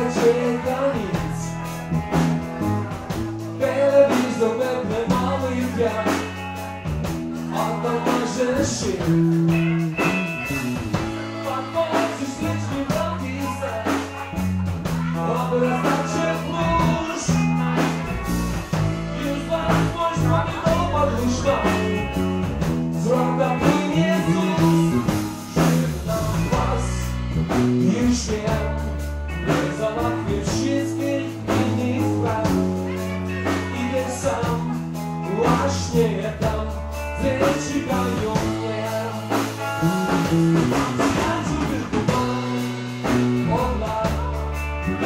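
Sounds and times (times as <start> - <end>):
drum kit steady beat: 0.0 - 45.0
guitar: 0.0 - 45.0
held bass notes: 0.0 - 45.0
live rock band playing: 0.0 - 45.0.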